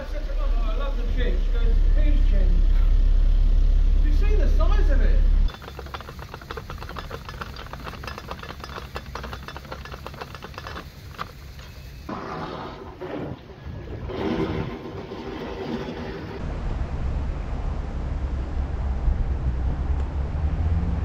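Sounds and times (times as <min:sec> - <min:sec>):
low rough rumble: 0:00.0 - 0:21.0
ratchet pawl clicking: 0:05.5 - 0:12.1.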